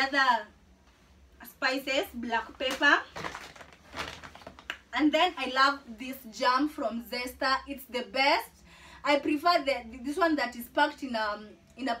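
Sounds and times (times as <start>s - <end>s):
paper bag rustling and crinkling: 2.6s - 4.7s.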